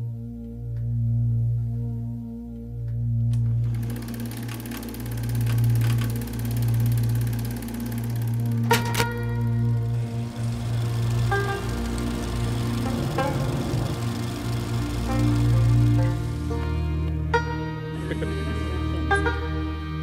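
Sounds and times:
calm ambient music: 0.0s - 20.0s
sharp clicks: 3.3s - 16.3s
film projector clatter: 3.4s - 16.6s.

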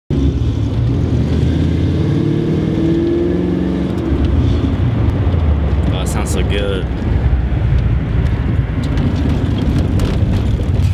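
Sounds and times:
car engine running: 2.8s - 10.9s.

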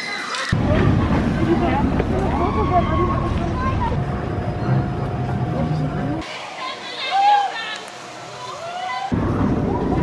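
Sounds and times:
voices outdoors: 0.0s - 10.0s
roller coaster rumbling on track: 0.5s - 6.3s, 9.1s - 10.0s.

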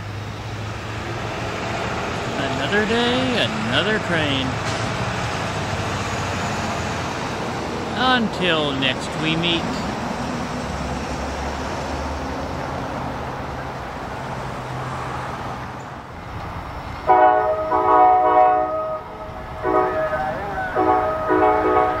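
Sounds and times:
road traffic: 0.0s - 22.0s
truck driving past: 0.0s - 22.0s
train horn blasts: 17.1s - 22.0s.

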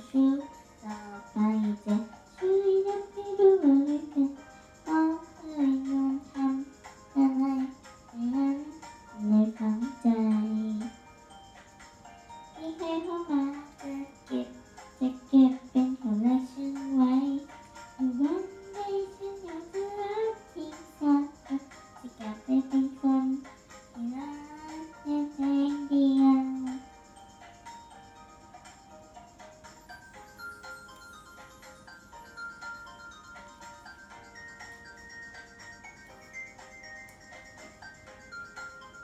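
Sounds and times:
girl singing into microphone: 0.0s - 11.0s, 12.6s - 23.4s, 24.0s - 26.8s.

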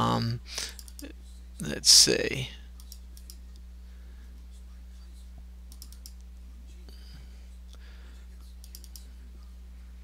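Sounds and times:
low electrical hum: 0.0s - 10.0s
computer mouse clicks: 0.7s - 1.1s, 2.8s - 3.6s, 5.7s - 6.3s, 8.6s - 9.1s.

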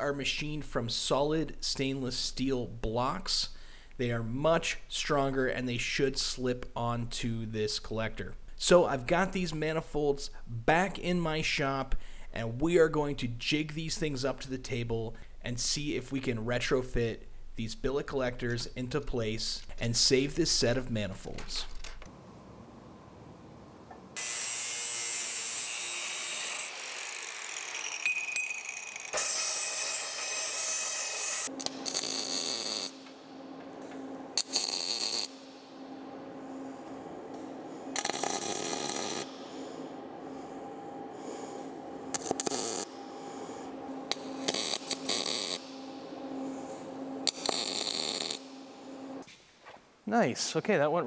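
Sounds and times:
welder humming: 23.9s - 49.3s
power tool hissing on metal: 36.4s - 49.2s.

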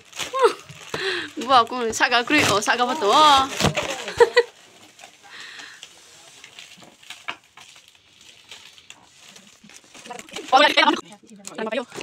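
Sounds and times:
foil balloon crinkling: 0.0s - 12.0s.

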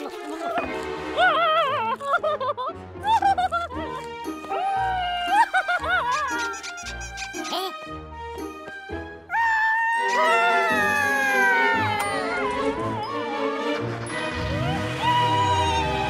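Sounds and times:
cartoon background music: 0.0s - 16.0s.

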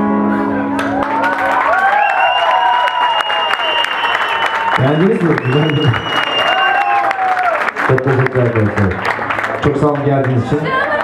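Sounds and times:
audience applauding and cheering: 0.7s - 11.0s
long high whistle: 1.8s - 7.2s.

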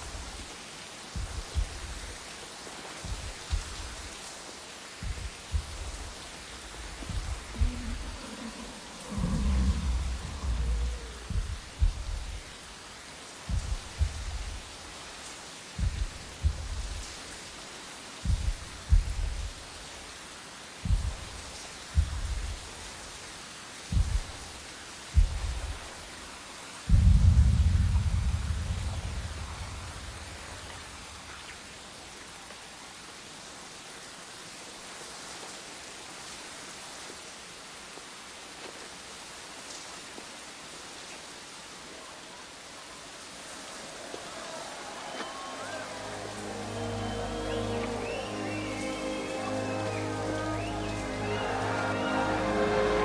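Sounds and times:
heavy rain falling: 0.0s - 53.0s
deep low thuds: 1.2s - 2.1s, 3.0s - 4.1s, 5.0s - 8.4s, 9.0s - 12.8s, 13.5s - 14.8s, 15.8s - 17.2s, 18.2s - 19.7s, 20.8s - 22.8s, 23.9s - 25.9s, 26.9s - 31.3s.

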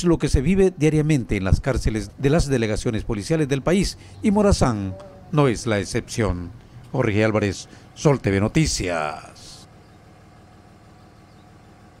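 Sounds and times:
vehicle engine idling: 0.0s - 12.0s.

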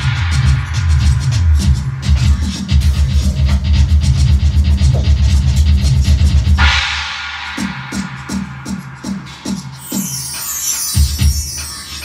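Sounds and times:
cymbals ringing: 0.0s - 3.2s, 6.6s - 12.0s
music with pulsing bass: 0.0s - 6.8s
fast drum kit playing: 0.0s - 12.0s.

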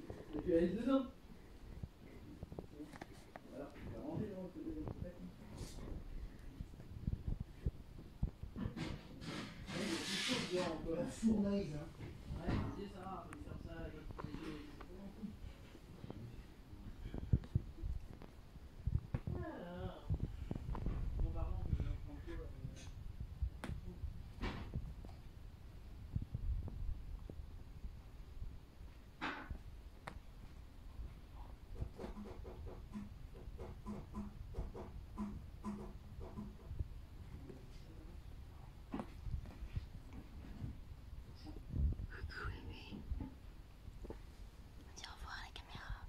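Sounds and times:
person whispering: 41.4s - 43.3s, 44.9s - 46.0s.

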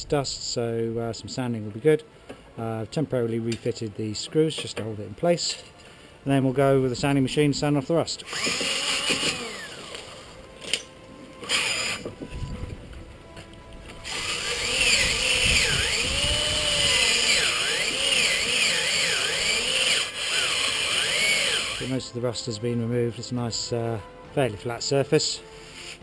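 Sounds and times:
electric drill sanding metal: 8.2s - 10.8s, 11.4s - 12.6s, 13.9s - 22.0s.

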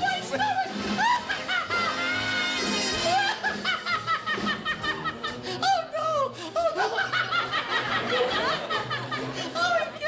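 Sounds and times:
men laughing hard: 0.9s - 5.6s, 6.5s - 10.0s.

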